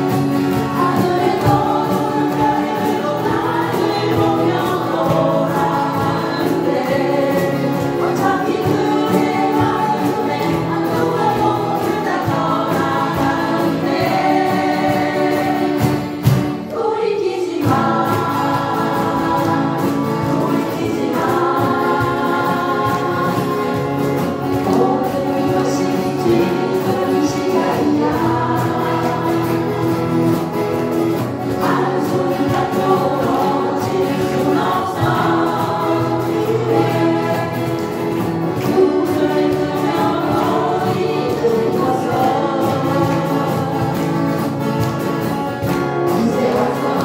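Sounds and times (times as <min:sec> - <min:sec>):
acoustic guitars strummed: 0:00.0 - 0:47.0
group singing in unison: 0:00.0 - 0:47.0.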